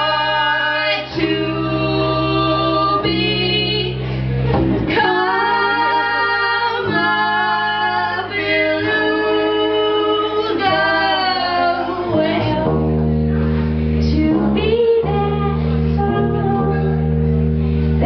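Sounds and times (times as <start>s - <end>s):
electric bass guitar: 0.0s - 18.0s
woman singing long notes: 4.9s - 13.1s, 14.0s - 17.2s.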